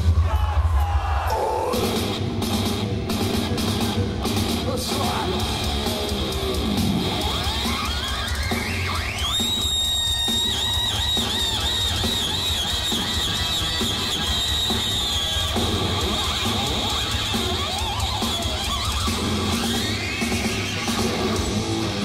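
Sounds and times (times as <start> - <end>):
bass and drums: 0.0 - 22.0
electric guitar screaming with vibrato: 3.8 - 22.0.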